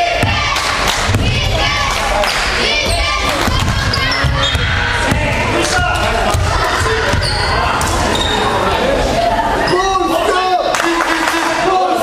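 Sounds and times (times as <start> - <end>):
voices in a hall: 0.0 - 12.0
basketball bouncing on gym floor: 0.2 - 1.8, 2.8 - 8.0.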